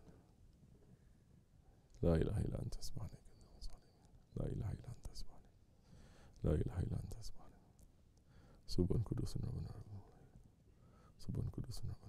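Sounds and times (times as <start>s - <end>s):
man softly reciting prayer: 1.9s - 5.6s, 6.4s - 7.8s, 8.6s - 10.4s, 11.1s - 12.0s.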